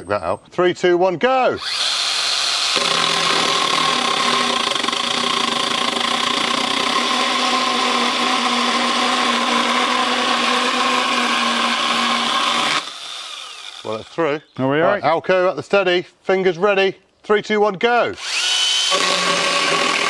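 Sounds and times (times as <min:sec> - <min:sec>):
battery chainsaw cutting wood: 0:01.6 - 0:14.1, 0:18.1 - 0:20.0.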